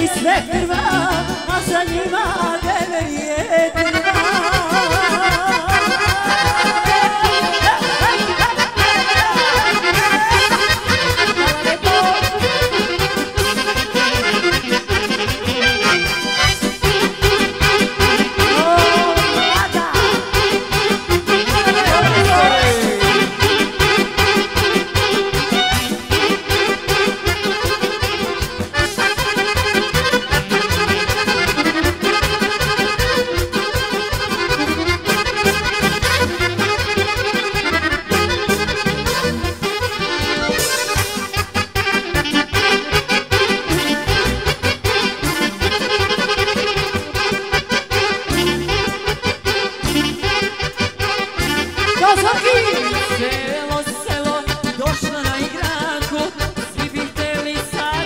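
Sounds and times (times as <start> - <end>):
accordion: 0.0 - 58.0
folk band playing dance tune: 0.0 - 58.0.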